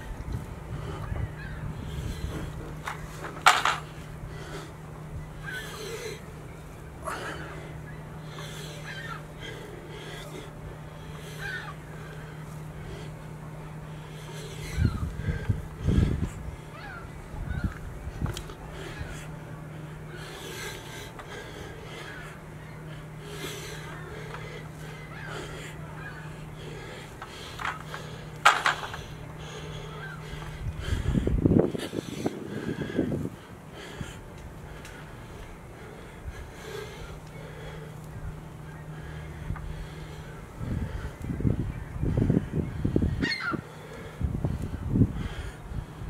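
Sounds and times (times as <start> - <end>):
man breathing forcefully: 0.0 - 17.2, 18.2 - 46.0
steady low hum: 0.0 - 46.0.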